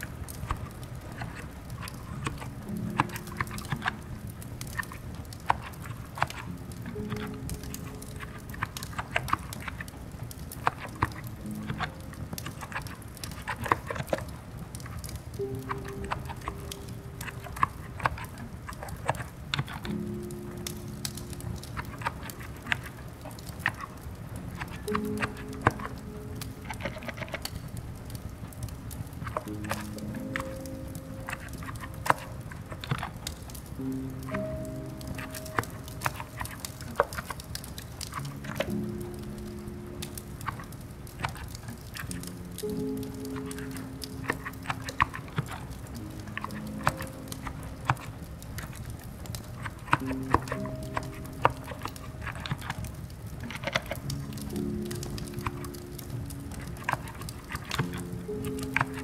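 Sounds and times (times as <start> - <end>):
fireplace crackles: 0.0 - 59.0
slow soft music: 0.0 - 59.0
steady rain hiss: 0.0 - 59.0.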